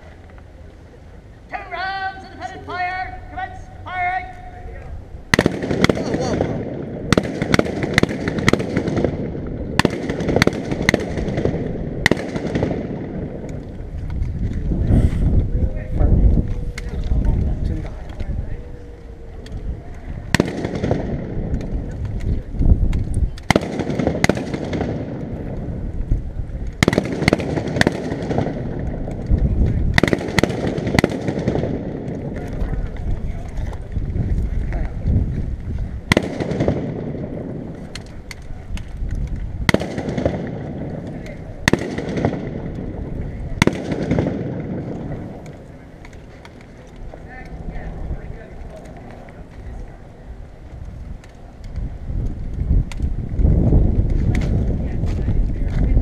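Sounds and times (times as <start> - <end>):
rifle gunshots echoing: 5.3 - 13.7, 20.2 - 21.8, 23.4 - 25.8, 26.8 - 29.1, 29.9 - 32.5, 36.1 - 38.0, 39.6 - 46.0
wind on microphone: 8.9 - 26.9, 27.6 - 46.0, 46.8 - 56.0.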